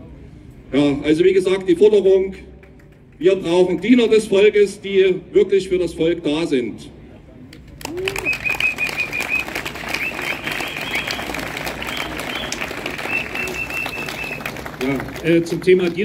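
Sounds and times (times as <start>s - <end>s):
crowd clapping: 2.6s - 4.2s, 7.5s - 16.0s
high whistle blown: 8.1s - 14.5s.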